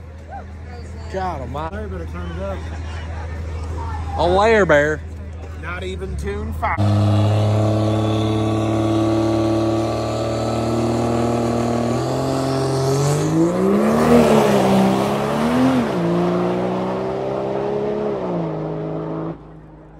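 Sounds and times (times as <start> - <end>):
diesel truck engine idling and revving: 5.8 - 19.9.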